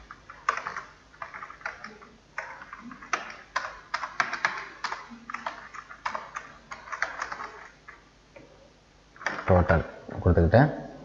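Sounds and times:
typing on computer keyboard: 0.0s - 8.0s, 9.2s - 9.6s.

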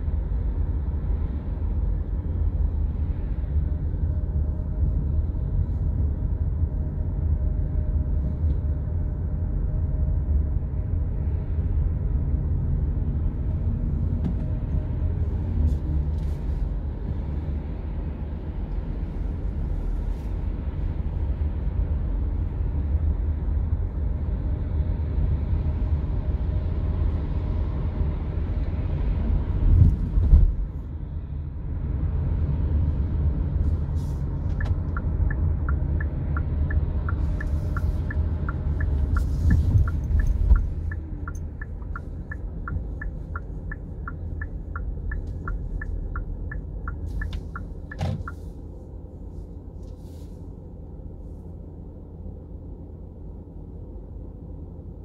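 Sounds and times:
road and engine rumble: 0.0s - 55.0s
turn signal ticking: 34.5s - 48.4s.

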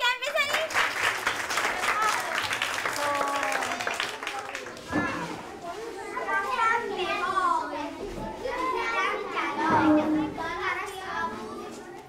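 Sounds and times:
children chattering and calling out: 1.6s - 12.0s.

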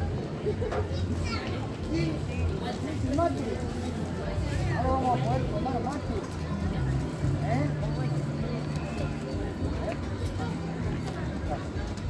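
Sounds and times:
people talking nearby: 0.0s - 12.0s.

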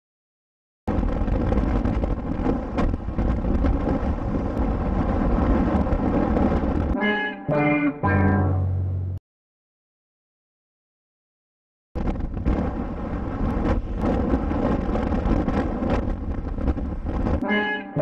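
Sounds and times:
wind: 0.9s - 7.3s, 12.0s - 18.0s
short pitched tones: 7.0s - 9.2s, 17.4s - 18.0s.

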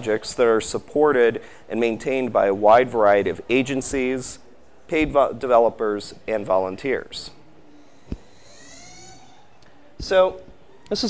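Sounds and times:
faint high squeak: 7.7s - 9.9s.

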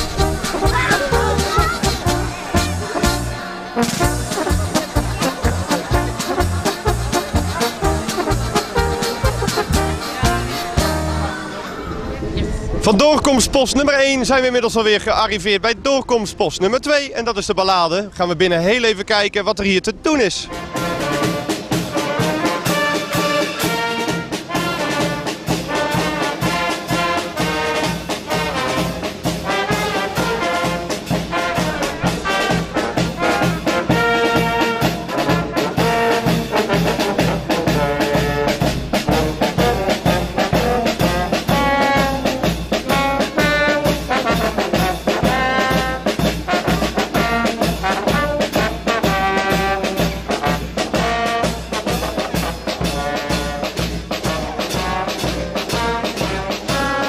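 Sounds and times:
marching drum beat: 0.0s - 11.3s, 20.6s - 57.0s
brass band playing: 0.0s - 13.1s, 20.3s - 57.0s.

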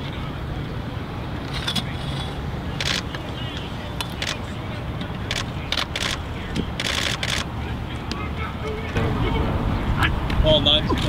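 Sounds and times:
steady low rumble: 8.9s - 11.0s.

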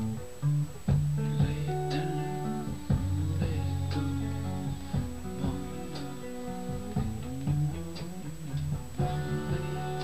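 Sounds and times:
electric guitar soul riff: 0.0s - 10.0s.

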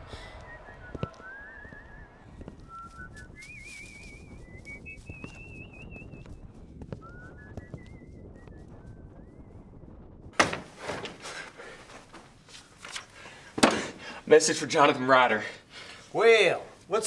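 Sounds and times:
person whistling a slow tune: 0.0s - 6.4s, 7.0s - 9.7s
sharp knock: 10.4s - 10.8s.

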